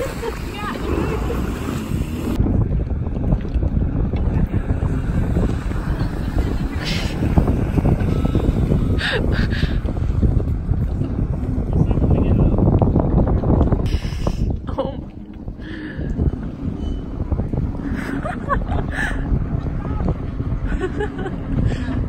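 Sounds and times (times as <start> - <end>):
jet ski engine running: 0.0 - 22.0
wind buffeting microphone: 0.0 - 22.0.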